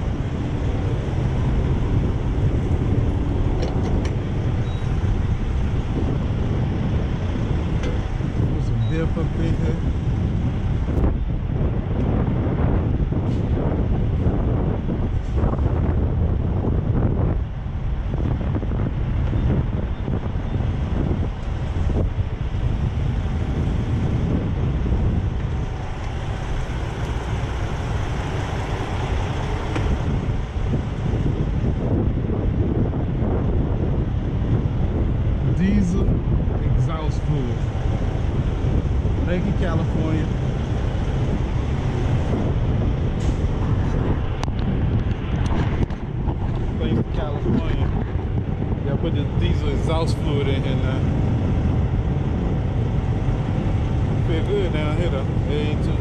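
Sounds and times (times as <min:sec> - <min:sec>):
diesel trucks idling: 0:00.0 - 0:56.0
wind buffeting microphone: 0:00.0 - 0:56.0.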